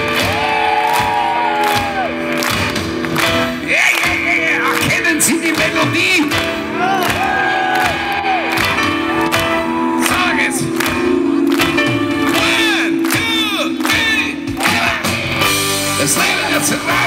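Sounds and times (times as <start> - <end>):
crowd cheering and whooping: 0.0 - 2.7, 6.7 - 17.0
crowd yelling: 0.0 - 2.7, 6.6 - 17.0
live band through pa system: 0.0 - 17.0.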